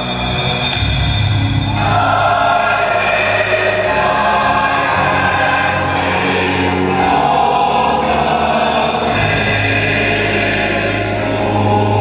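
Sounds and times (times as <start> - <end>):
gospel choir singing: 1.6 - 12.0.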